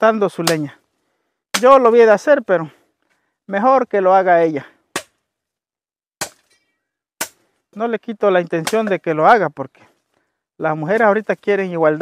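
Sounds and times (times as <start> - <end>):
machete striking wood: 0.4 - 0.6, 1.5 - 1.8, 4.9 - 5.2, 6.2 - 7.5, 8.6 - 9.0.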